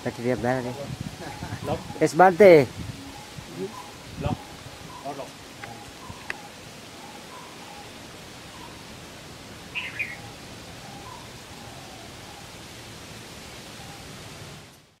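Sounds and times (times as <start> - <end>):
faint bird calls: 0.0 - 9.1, 9.7 - 12.6
steady outdoor hiss: 0.0 - 15.0.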